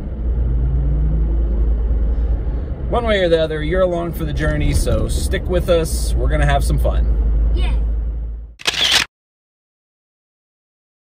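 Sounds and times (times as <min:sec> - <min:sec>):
car cabin road rumble: 0:01.4 - 0:08.5
camera shutter sound effect: 0:08.6 - 0:09.1.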